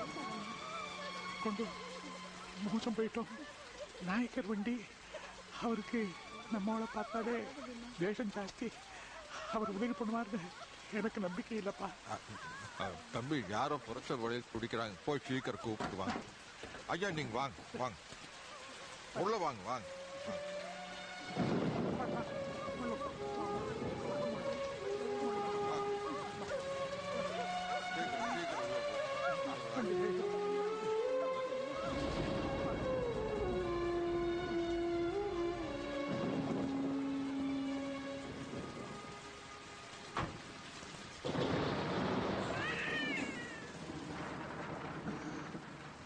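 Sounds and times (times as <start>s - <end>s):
background music: 0.0s - 15.5s, 18.7s - 40.4s
steady rain: 0.0s - 46.0s
thunder crack: 21.3s - 29.4s, 31.7s - 34.8s, 35.6s - 37.3s, 41.2s - 46.0s.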